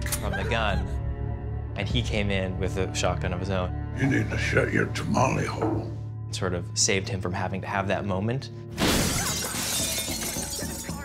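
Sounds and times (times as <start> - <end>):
glass shattering: 8.8 - 11.0.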